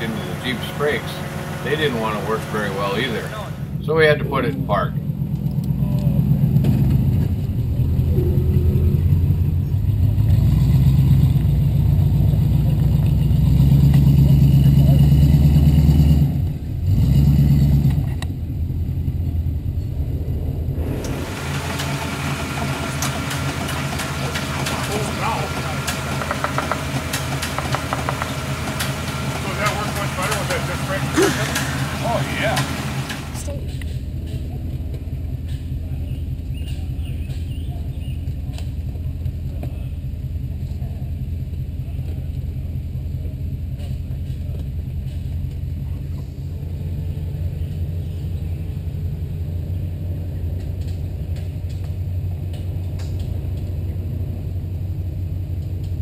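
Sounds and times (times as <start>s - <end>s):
thin noisy engine with crackles: 0.0s - 56.0s
vehicle engine under load: 0.0s - 56.0s.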